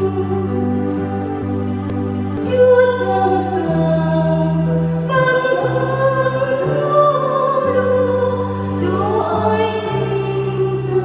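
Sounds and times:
church choir singing: 0.0s - 11.0s
instrumental accompaniment: 0.0s - 11.0s.

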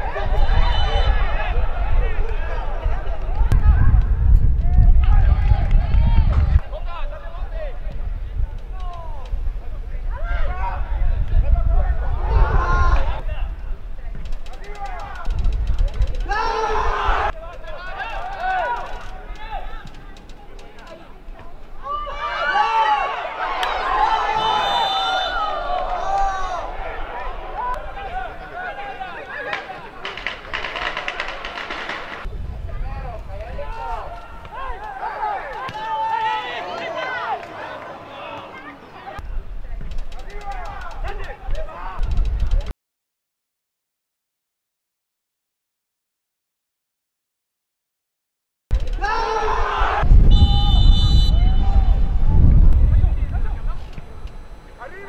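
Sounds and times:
men talking and calling out: 6.5s - 42.2s.

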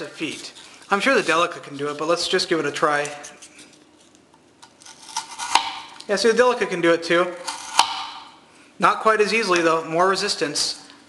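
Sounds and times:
crackling scrapes: 0.0s - 2.3s.

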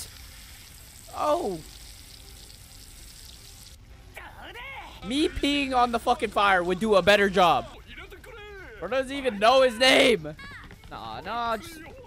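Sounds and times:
crackling fire hiss: 0.0s - 4.3s.

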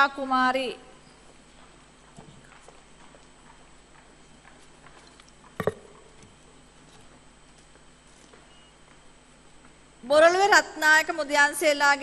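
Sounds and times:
footsteps on stage floor: 1.2s - 5.6s.

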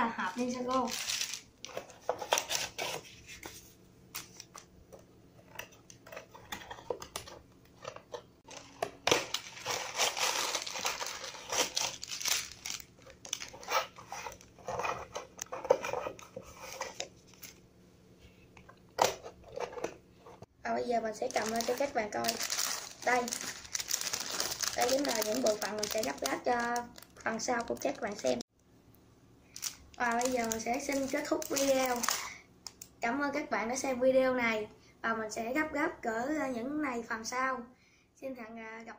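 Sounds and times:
plastic bags crinkling: 0.4s - 2.8s, 8.4s - 15.1s, 21.1s - 28.4s, 29.5s - 32.8s.

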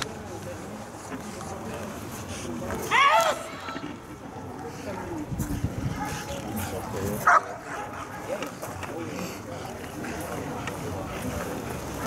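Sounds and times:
dog barking: 7.2s - 8.0s.

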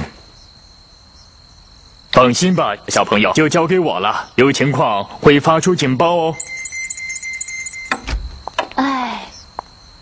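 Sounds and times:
cricket chirps: 0.0s - 10.0s
crickets trilling: 0.0s - 10.0s.

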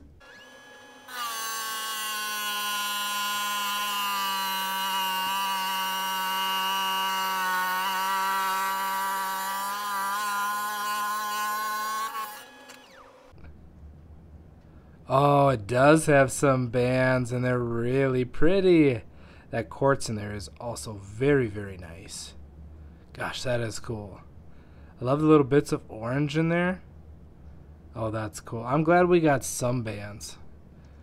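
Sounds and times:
saw blade cutting stone: 0.2s - 13.2s.

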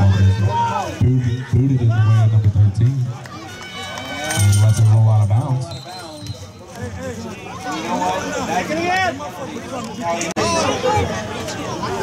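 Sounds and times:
man commentating football: 0.0s - 3.3s, 4.3s - 7.4s
faint voices: 0.0s - 12.0s.

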